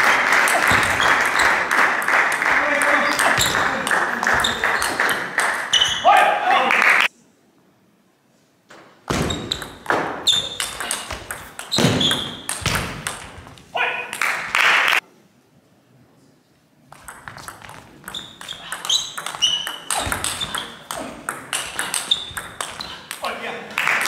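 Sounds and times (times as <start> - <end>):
applause and crowd noise: 0.0 - 5.7, 6.4 - 7.1, 14.2 - 15.0, 23.7 - 24.0
table tennis ball clicking: 16.9 - 23.2.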